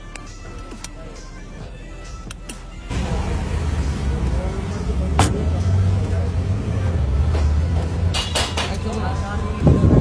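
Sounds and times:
low engine rumble: 0:02.8 - 0:10.0.

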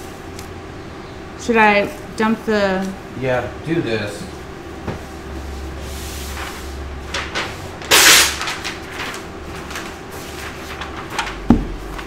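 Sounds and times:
dull thump: 0:11.5 - 0:11.8.

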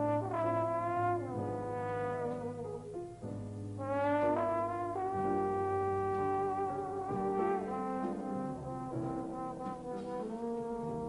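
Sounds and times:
trombone sliding up: 0:00.0 - 0:03.0, 0:03.8 - 0:11.0
jazz band playing: 0:00.0 - 0:11.0.

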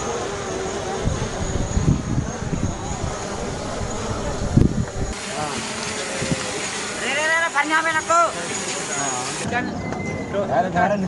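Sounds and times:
background crowd and traffic: 0:00.0 - 0:11.0.

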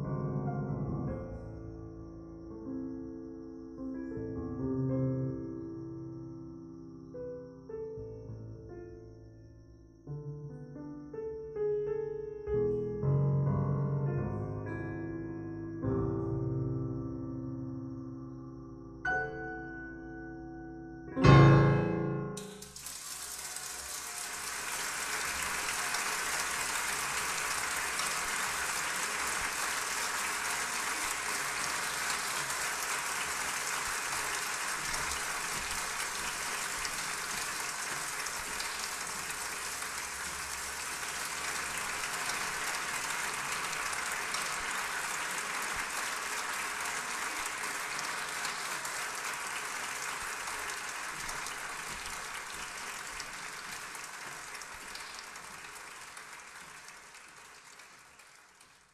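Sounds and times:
audience applauding: 0:22.4 - 0:58.9.

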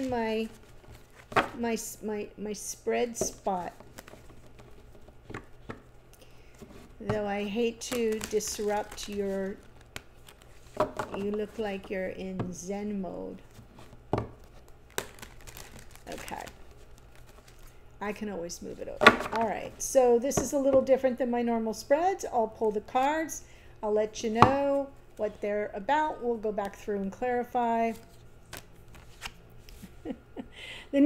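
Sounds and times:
cards crinkling: 0:03.6 - 0:05.8, 0:07.7 - 0:11.8, 0:13.8 - 0:17.8, 0:28.0 - 0:29.8
cards snapping: 0:28.5 - 0:29.4.

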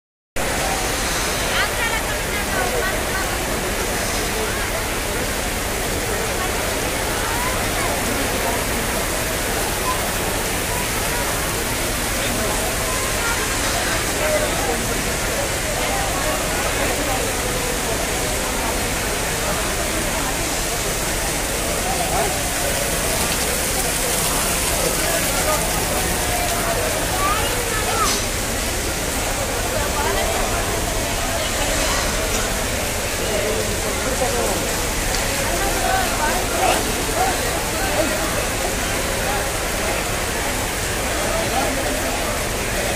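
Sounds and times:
heavy rain pouring: 0:00.4 - 0:42.9
people chattering: 0:00.4 - 0:42.9.

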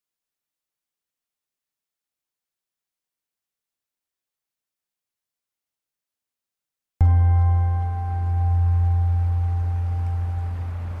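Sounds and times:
deep ringing musical tone: 0:07.0 - 0:11.0.

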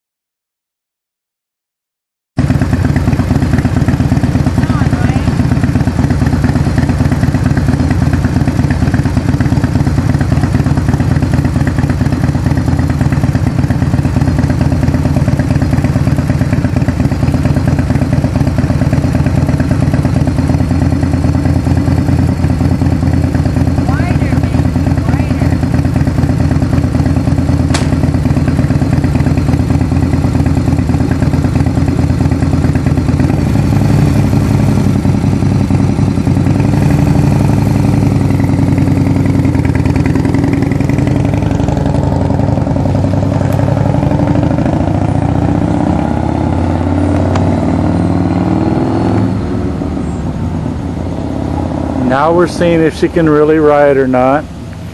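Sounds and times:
motorcycle engine idling: 0:02.4 - 0:48.5, 0:49.2 - 0:54.9
sharp click: 0:27.7 - 0:28.0.

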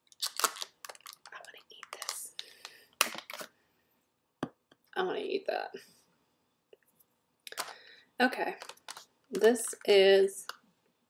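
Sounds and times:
plastic packaging clicking and crinkling: 0:00.0 - 0:03.5, 0:07.5 - 0:10.6.

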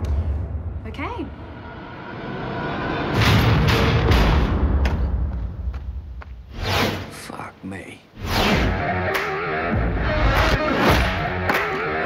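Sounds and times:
low rumbling trailer score: 0:00.0 - 0:07.0.

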